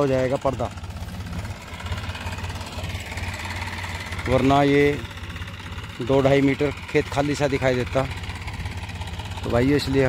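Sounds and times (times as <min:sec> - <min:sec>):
tractor diesel engine chugging: 0:00.0 - 0:10.0.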